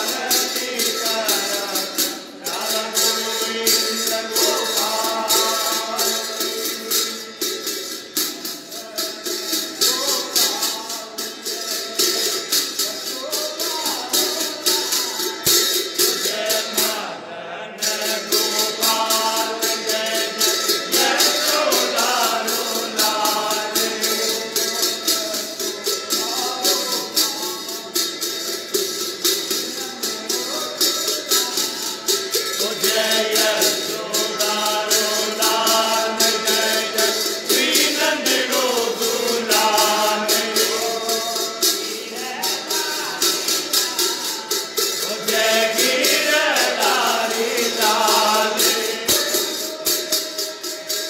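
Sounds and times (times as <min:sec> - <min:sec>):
jingling percussion beat: 0:00.0 - 0:51.0
person singing devotional song: 0:00.0 - 0:51.0.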